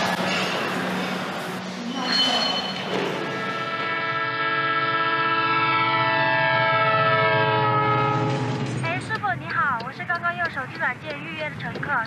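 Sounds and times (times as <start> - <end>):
train rumbling: 0.0 - 4.3, 7.2 - 12.0
train horn blast: 3.1 - 8.8.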